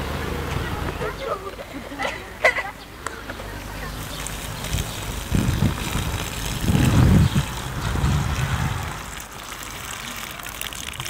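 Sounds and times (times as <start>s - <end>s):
low rumbling: 2.8s - 10.0s
water splashing onto soil: 3.8s - 11.0s.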